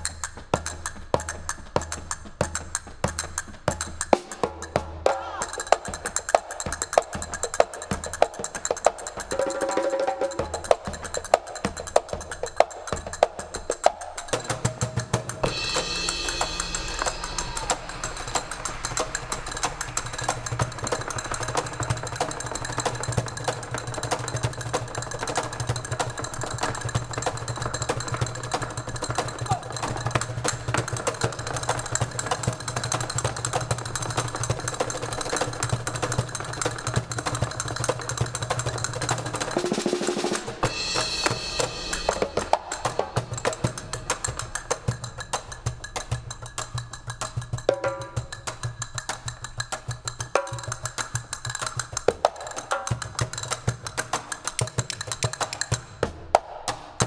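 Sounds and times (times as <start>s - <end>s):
drum kit: 0.0s - 57.0s
hand drums: 0.0s - 57.0s.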